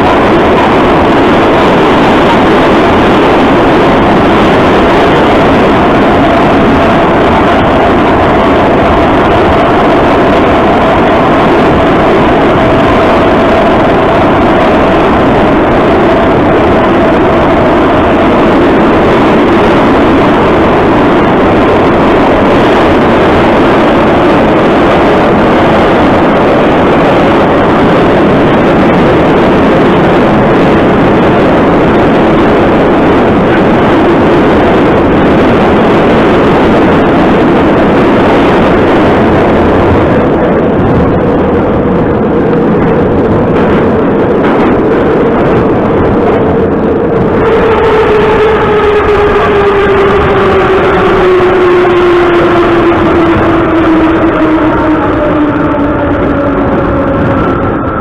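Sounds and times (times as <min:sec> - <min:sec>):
faint whine: 0:00.0 - 0:58.0
train wheels on rails: 0:00.0 - 0:58.0.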